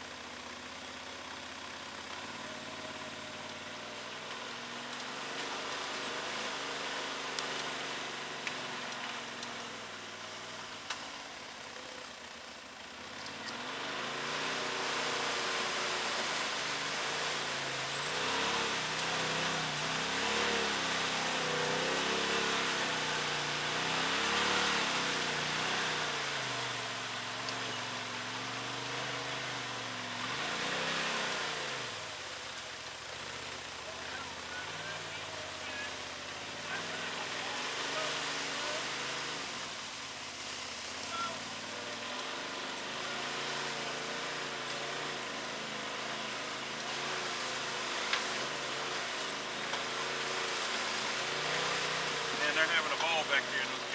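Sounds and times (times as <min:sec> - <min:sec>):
vehicle engine revving: 0:00.0 - 0:53.9
steady rush of noise: 0:29.9 - 0:53.9.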